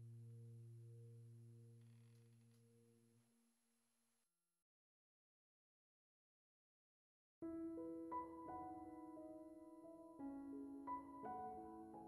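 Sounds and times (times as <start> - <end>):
faint low hum: 0.0 - 3.3.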